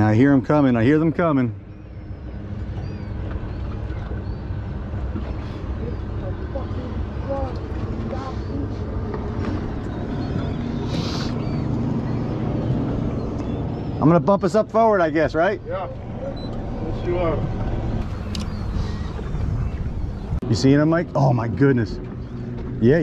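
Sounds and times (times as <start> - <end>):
boat motor idling: 0.0 - 23.0.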